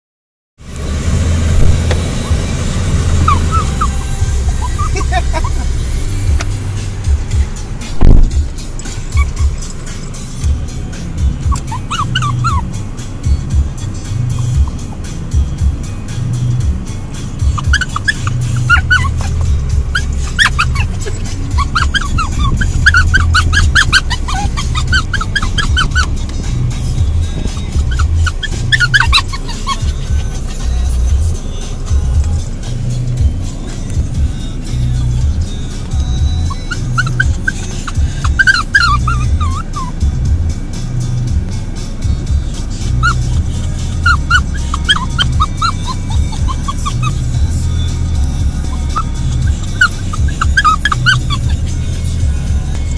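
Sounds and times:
car stereo music with bass beat: 0:00.6 - 0:52.9
puppy whining: 0:03.2 - 0:07.2, 0:08.8 - 0:10.6, 0:11.2 - 0:12.8, 0:13.5 - 0:15.7, 0:17.4 - 0:40.1, 0:42.4 - 0:52.3
loud thump: 0:08.0 - 0:08.4.

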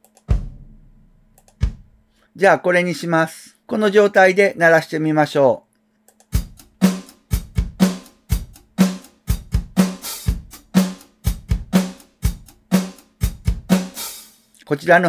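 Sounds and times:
kick and snare drum beat: 0:00.2 - 0:02.1, 0:06.3 - 0:14.3.

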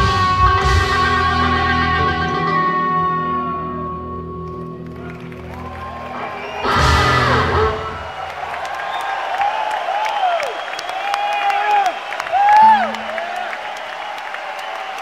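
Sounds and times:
band with electric guitar: 0:00.0 - 0:08.3
audience cheering and whistling: 0:04.8 - 0:15.0
band final hit: 0:06.6 - 0:08.0.

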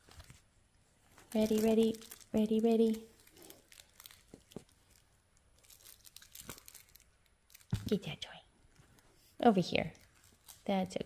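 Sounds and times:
person speaking: 0:01.3 - 0:03.2, 0:07.8 - 0:08.5, 0:10.6 - 0:11.0.

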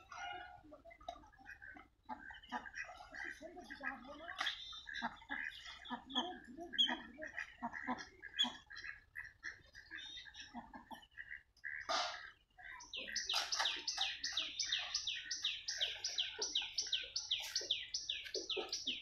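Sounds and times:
ducks calling: 0:00.0 - 0:19.0
small birds chirping: 0:00.0 - 0:19.0.

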